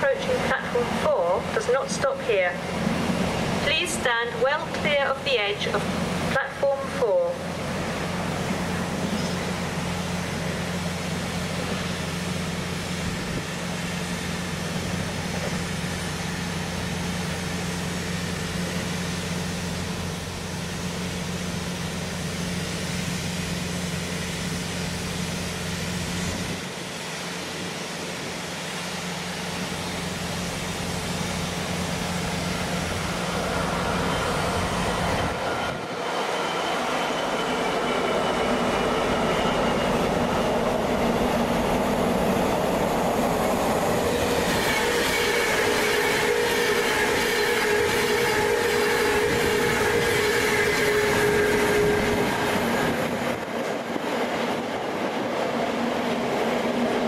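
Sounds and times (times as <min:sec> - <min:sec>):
diesel locomotive hum: 0:00.0 - 0:57.0
train rolling rumble: 0:00.0 - 0:57.0.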